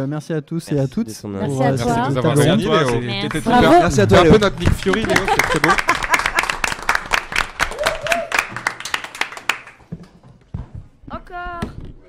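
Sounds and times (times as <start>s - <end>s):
small group applauding: 2.4s - 9.9s.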